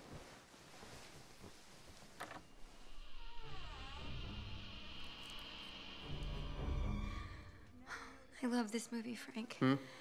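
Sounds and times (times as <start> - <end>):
low drone: 3.0 - 8.3.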